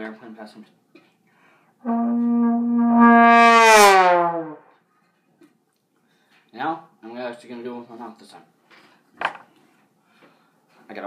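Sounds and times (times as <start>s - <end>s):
trombone long note: 1.8s - 4.6s.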